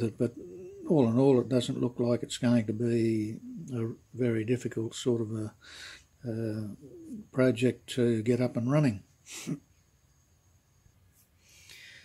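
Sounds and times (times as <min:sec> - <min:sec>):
faint high-pitched whine: 0:00.0 - 0:12.0.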